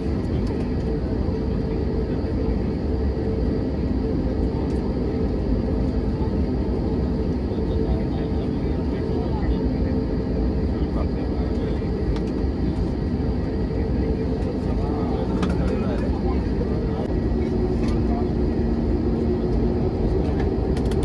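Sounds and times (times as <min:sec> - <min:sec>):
jet airliner cabin rumble: 0:00.0 - 0:21.0
passengers murmuring: 0:00.0 - 0:21.0.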